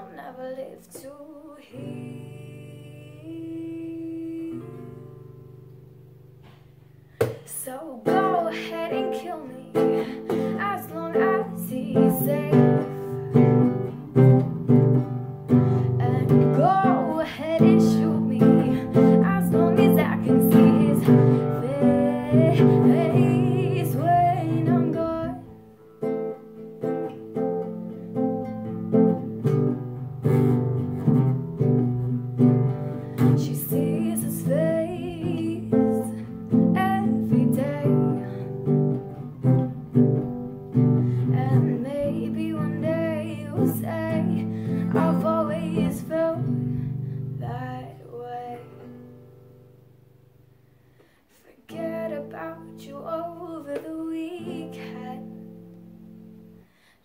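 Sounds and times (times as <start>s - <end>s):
girl singing: 0.0s - 5.5s, 7.2s - 49.4s, 51.3s - 56.3s
strummed acoustic guitar: 0.0s - 56.9s.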